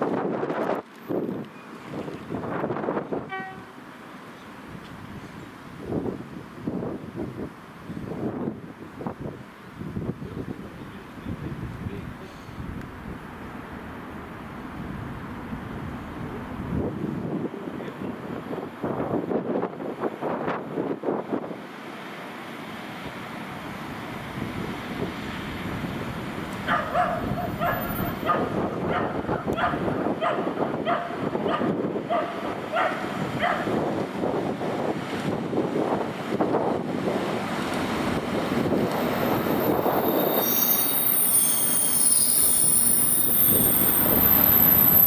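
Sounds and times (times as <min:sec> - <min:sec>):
wind noise on microphone: 0:00.0 - 0:03.7, 0:04.7 - 0:13.4, 0:14.2 - 0:21.6, 0:23.0 - 0:45.0
diesel locomotive rumble: 0:00.0 - 0:45.0
locomotive horn toot: 0:03.2 - 0:03.8.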